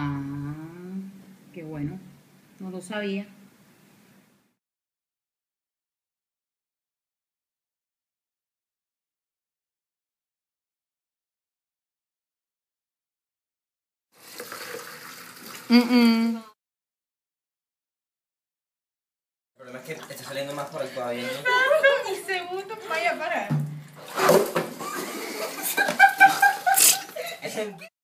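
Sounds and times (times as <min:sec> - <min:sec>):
water splashing into plastic containers: 0:14.2 - 0:15.7, 0:19.7 - 0:21.6, 0:23.4 - 0:27.3
person laughing: 0:15.7 - 0:16.5, 0:24.9 - 0:27.9.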